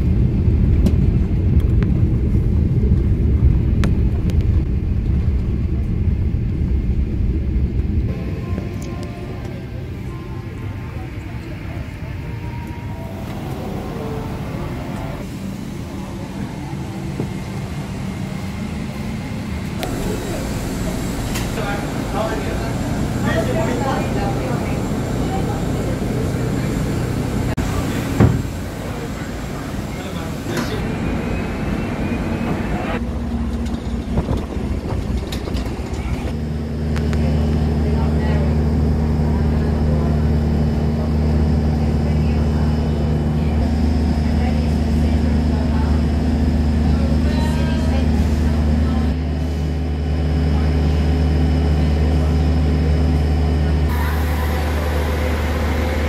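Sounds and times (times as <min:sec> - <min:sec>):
low mechanical hum: 0:00.0 - 0:56.0
people's voices in background: 0:08.1 - 0:33.1, 0:34.1 - 0:56.0.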